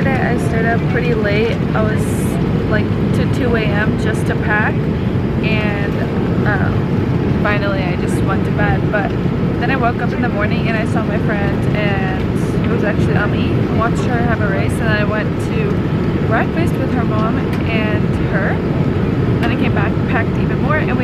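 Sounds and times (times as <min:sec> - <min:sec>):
woman talking quietly: 0:00.0 - 0:04.8, 0:07.4 - 0:18.6, 0:19.4 - 0:21.0
airliner cabin drone: 0:00.0 - 0:21.0.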